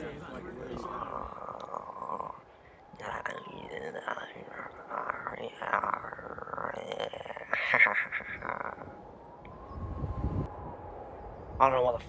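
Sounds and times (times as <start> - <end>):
person whispering: 0.7 - 8.9.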